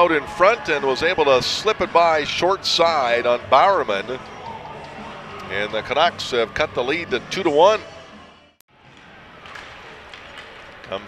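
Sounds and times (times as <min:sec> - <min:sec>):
hockey arena crowd and rink noise: 0:00.0 - 0:11.0.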